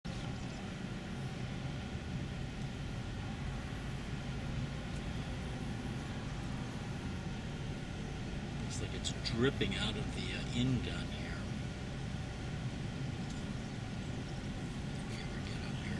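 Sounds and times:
faint hum tones: 0:00.0 - 0:15.9
vehicle engine rumbling: 0:00.0 - 0:15.9.

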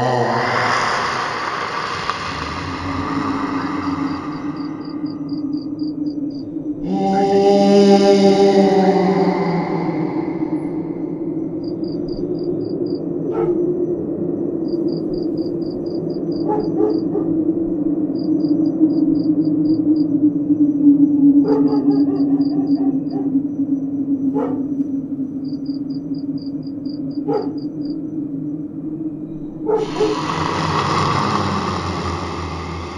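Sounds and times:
low drone: 0:00.0 - 0:13.2, 0:28.0 - 0:32.9
crickets chirping: 0:00.0 - 0:32.9.

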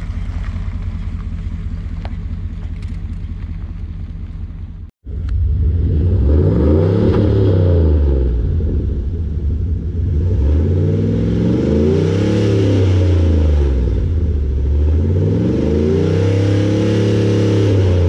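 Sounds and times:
pickup engine revving and idling: 0:00.0 - 0:18.0.

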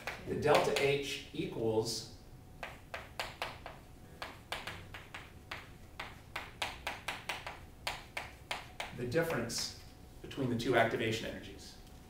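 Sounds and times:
chalk tapping and scratching: 0:02.6 - 0:09.8.

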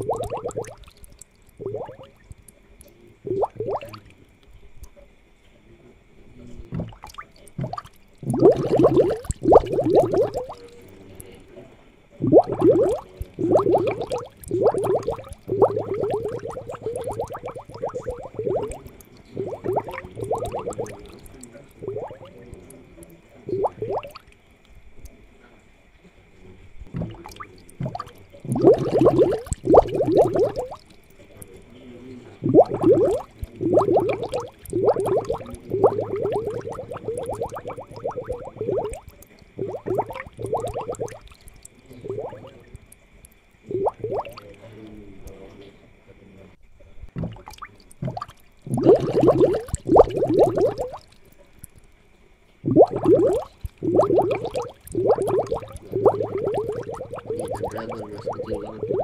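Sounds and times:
aquarium bubbling and gurgling: 0:00.0 - 0:59.0
faint high hum: 0:00.0 - 0:59.0.

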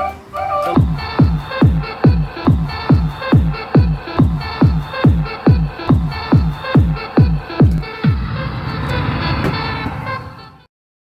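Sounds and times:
held synth chord: 0:00.0 - 0:10.6
electronic dance music jingle: 0:00.6 - 0:10.6.

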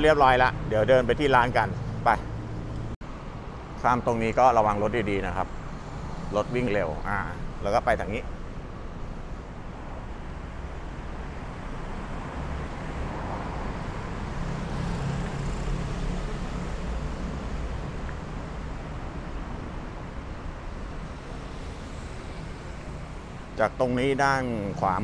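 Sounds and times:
cars driving past: 0:00.0 - 0:25.0.

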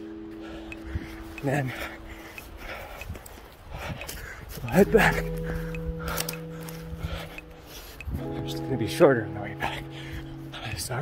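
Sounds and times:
held chord of music: 0:00.0 - 0:03.0, 0:04.6 - 0:11.0.

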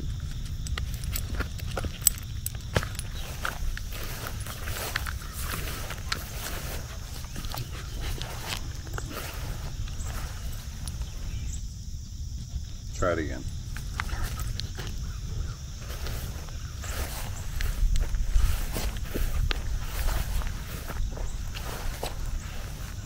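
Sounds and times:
dog footsteps on leaves and grass: 0:00.1 - 0:11.5, 0:13.2 - 0:23.0.

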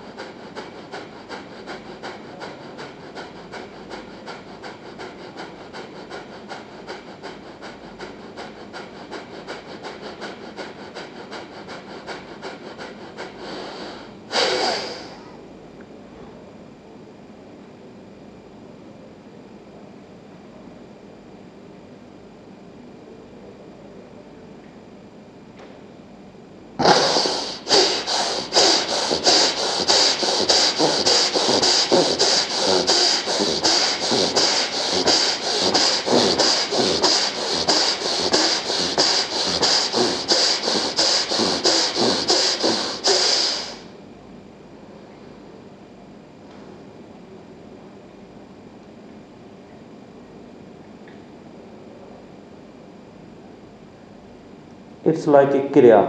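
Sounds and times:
rapid forceful hissing breaths: 0:00.0 - 0:15.3, 0:26.8 - 0:43.9.

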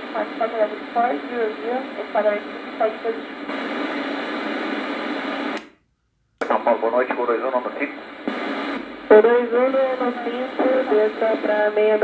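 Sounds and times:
radio hiss: 0:00.0 - 0:05.6, 0:06.4 - 0:12.0.

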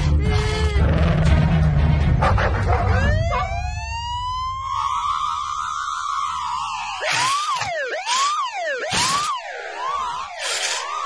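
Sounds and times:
toy police siren warbling: 0:03.0 - 0:11.0.

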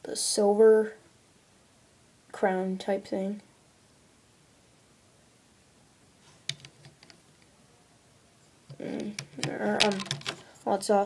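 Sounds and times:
small plastic clicks: 0:06.5 - 0:07.5, 0:08.7 - 0:10.4.

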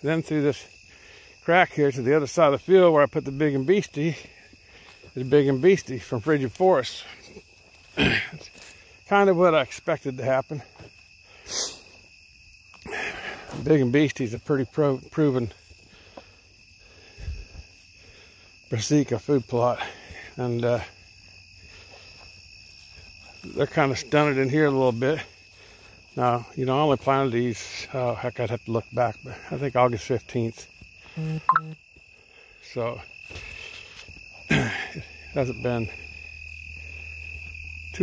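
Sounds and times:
crickets trilling: 0:00.0 - 0:38.0
insects chirring: 0:00.0 - 0:38.0.

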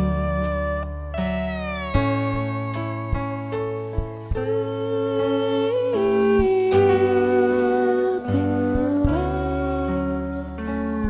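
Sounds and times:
electric keyboard chords: 0:00.0 - 0:11.0
sliding melody note: 0:00.0 - 0:11.0.

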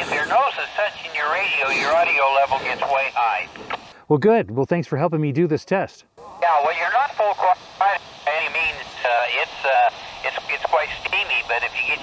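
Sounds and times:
tinny voice through radio speaker: 0:00.0 - 0:03.6, 0:06.4 - 0:12.0
faint hiss: 0:00.0 - 0:04.2, 0:05.9 - 0:12.0.

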